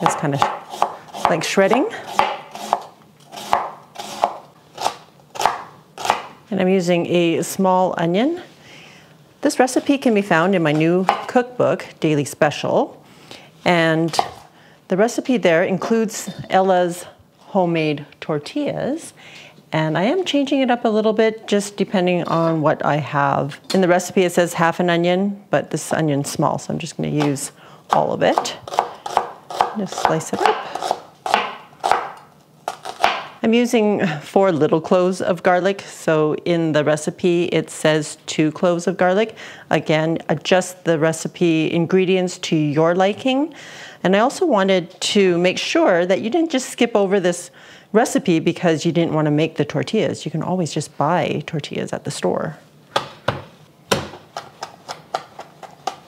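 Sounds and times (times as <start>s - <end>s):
knife slicing cabbage: 0.0s - 6.3s, 28.3s - 33.3s.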